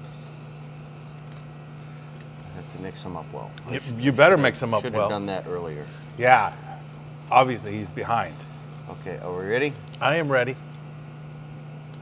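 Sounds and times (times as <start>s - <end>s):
low electrical hum: 0.0s - 12.0s
paper tickets rustling: 0.1s - 11.3s.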